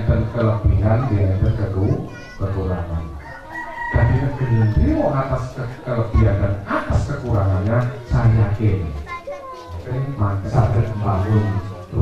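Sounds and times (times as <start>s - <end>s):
man's voice: 0.0s - 9.1s, 9.7s - 12.0s
rooster crowing: 3.1s - 5.3s.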